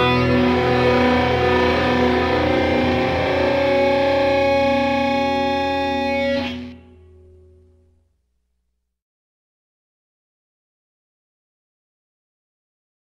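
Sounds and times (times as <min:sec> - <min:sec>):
distorted electric guitar: 0:00.0 - 0:07.9.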